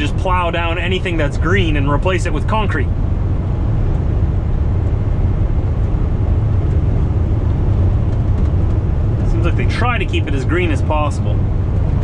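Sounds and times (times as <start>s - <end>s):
truck engine drone: 0.0s - 12.0s
tyre and road noise: 0.0s - 12.0s.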